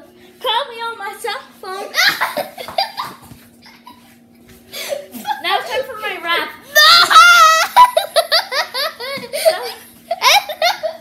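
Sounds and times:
boys laughing loudly: 1.9s - 4.1s, 6.8s - 11.0s.

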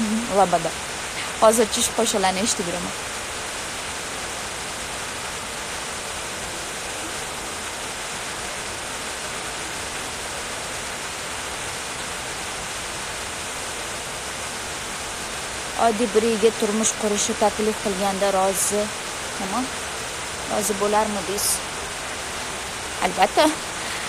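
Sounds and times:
steady hiss: 0.0s - 24.0s.

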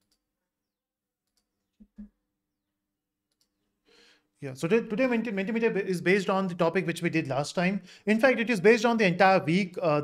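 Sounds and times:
computer mouse clicks: 1.2s - 2.1s, 3.3s - 3.6s.

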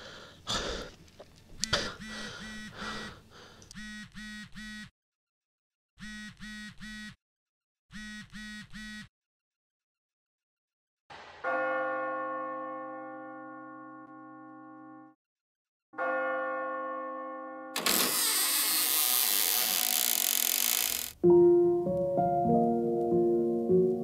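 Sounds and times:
phone vibrating buzzes: 1.6s - 4.9s, 6.0s - 7.2s, 7.9s - 9.1s, 17.9s - 21.2s.

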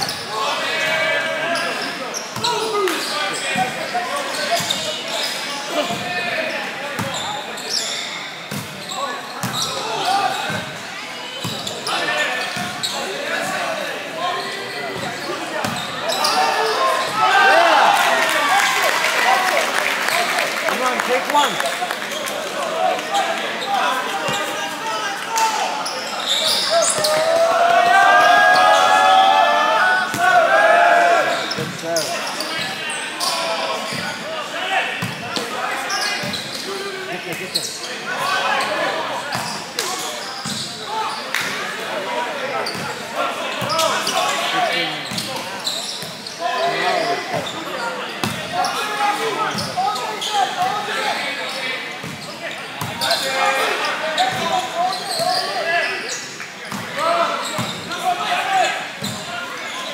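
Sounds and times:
people shouting and talking: 0.0s - 59.9s.

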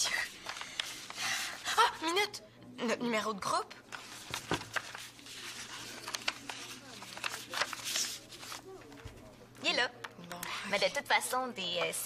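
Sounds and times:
sharp paper crackles: 0.0s - 1.6s, 3.9s - 9.3s
paper rustling and crinkling: 0.1s - 1.6s, 3.9s - 9.4s.

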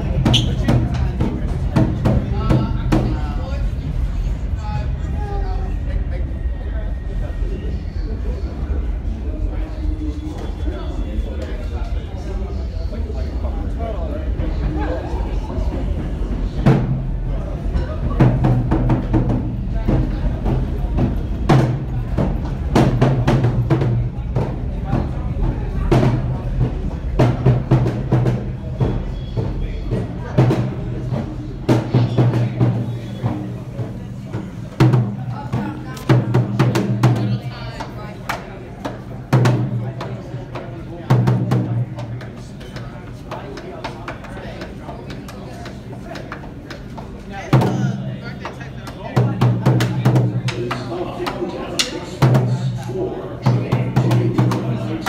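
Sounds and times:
wooden drum playing: 47.5s - 55.0s.

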